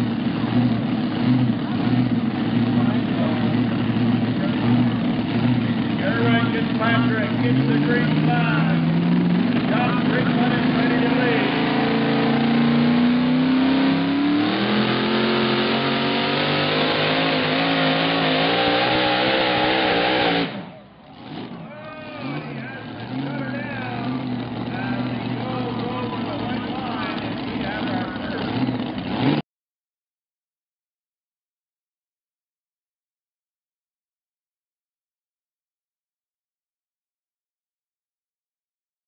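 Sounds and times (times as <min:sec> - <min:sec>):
tractor engine at full power: 0:00.0 - 0:29.4
voices: 0:02.7 - 0:05.2, 0:05.8 - 0:12.4, 0:20.7 - 0:29.0.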